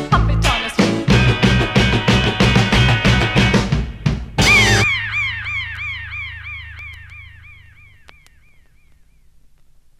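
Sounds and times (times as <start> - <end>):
warbling electronic tone: 4.4 - 9.0
low hum: 4.4 - 9.6
faint clicks: 8.0 - 9.7.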